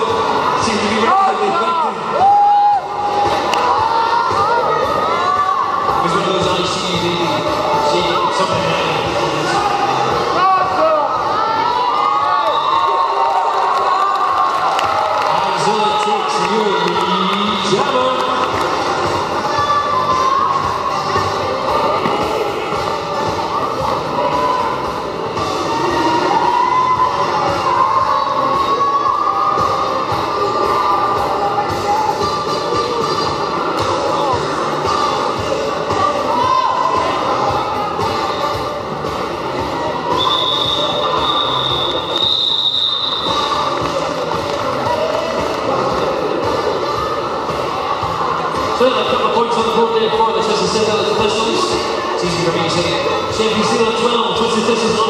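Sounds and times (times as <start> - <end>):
hubbub of voices: 0.0 - 55.0.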